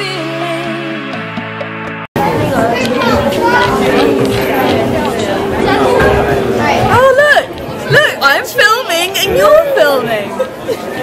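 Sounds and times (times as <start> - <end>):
crowd chattering: 2.2 - 11.0
woman's voice: 6.8 - 10.4.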